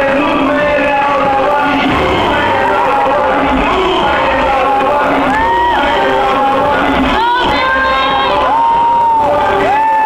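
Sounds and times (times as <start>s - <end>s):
audience cheering and screaming: 1.6s - 10.0s.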